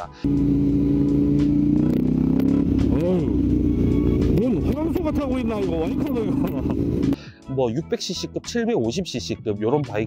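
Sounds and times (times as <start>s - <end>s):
motorcycle engine running: 0.2s - 7.2s.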